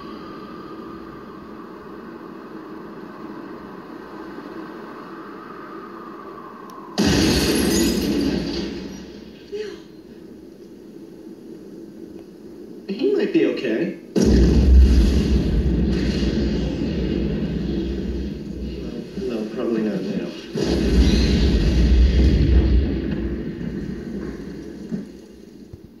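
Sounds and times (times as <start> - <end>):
heavy explosion booms: 7.0 - 9.4, 14.2 - 25.2.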